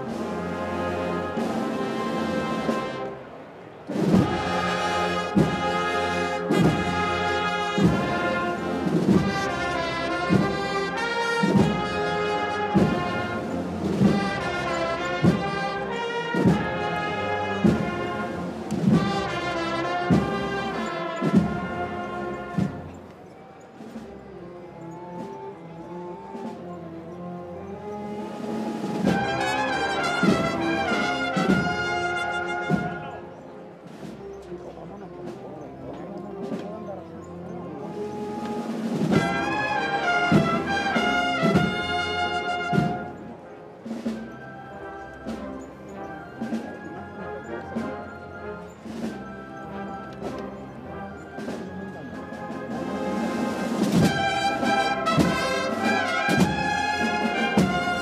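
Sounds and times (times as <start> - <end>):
brass band playing a march: 0.0 - 58.0.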